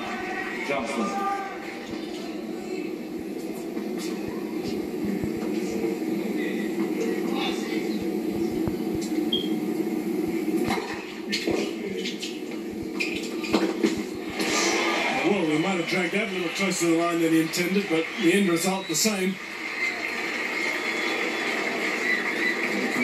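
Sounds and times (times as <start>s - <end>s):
television background hum: 0.0s - 23.0s.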